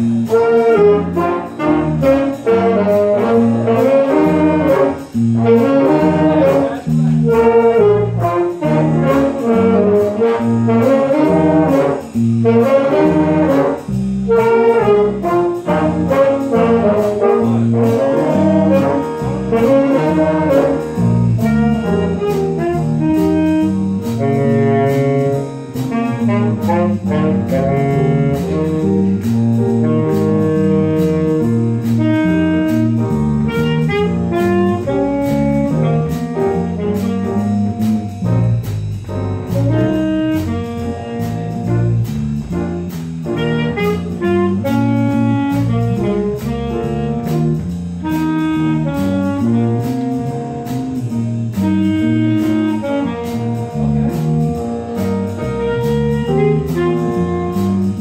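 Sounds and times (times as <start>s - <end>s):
jazz band playing live: 0.0s - 58.0s.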